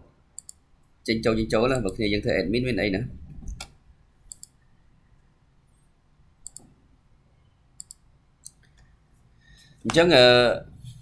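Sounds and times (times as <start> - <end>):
faint background hiss: 0.0 - 11.0
computer mouse clicks: 0.4 - 0.6, 3.5 - 4.6, 6.4 - 6.7, 7.8 - 8.9.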